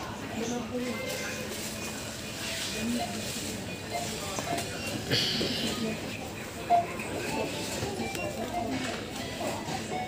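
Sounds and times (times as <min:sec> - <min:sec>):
faint background music: 0:00.0 - 0:10.0
indistinct shopper voices: 0:00.0 - 0:10.0
steady hubbub: 0:00.0 - 0:10.0.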